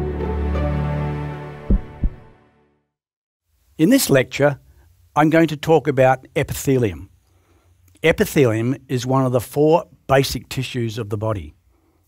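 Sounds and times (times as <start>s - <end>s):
deep thumps: 1.7s - 2.3s.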